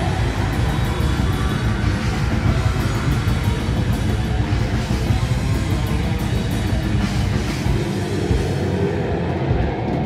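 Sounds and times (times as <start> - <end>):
live metal band playing: 0.0 - 10.0.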